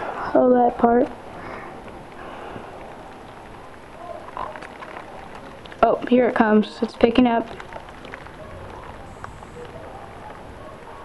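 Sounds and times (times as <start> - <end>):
steady rain hiss: 0.0 - 11.0
sharp raindrop ticks: 1.0 - 10.6.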